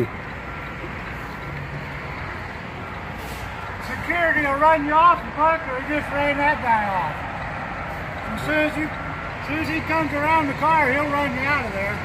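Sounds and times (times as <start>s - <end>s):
diesel engine running: 0.0s - 12.0s.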